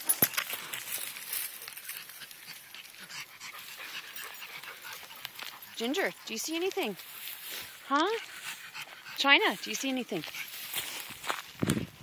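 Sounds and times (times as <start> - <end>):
dog panting: 1.9 - 10.9.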